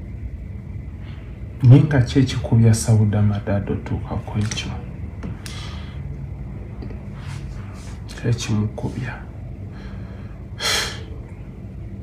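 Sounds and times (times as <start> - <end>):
steady low hum: 0.0 - 12.0
person sharp intake of breath: 5.4 - 6.1, 9.7 - 11.2.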